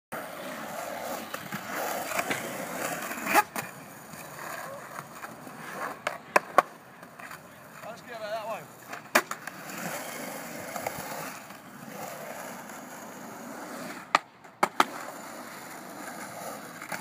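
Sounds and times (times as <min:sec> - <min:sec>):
skateboard wheels rolling on concrete: 0:00.1 - 0:17.0
skateboard clacking on concrete: 0:00.5 - 0:17.0.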